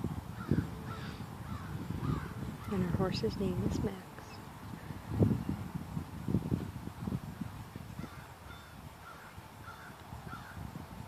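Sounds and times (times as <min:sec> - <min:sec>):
bird harsh calls: 0:00.4 - 0:02.8, 0:08.0 - 0:10.6.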